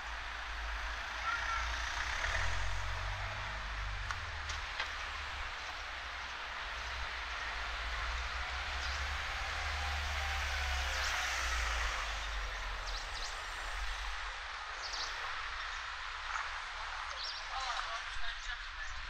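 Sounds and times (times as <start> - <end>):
cars driving past: 0.0 - 17.1
van approaching: 0.0 - 17.8
street hubbub: 0.0 - 19.0.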